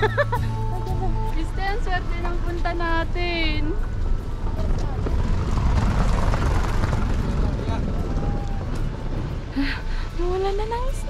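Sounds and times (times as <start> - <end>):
wind buffeting microphone: 1.8 - 11.0.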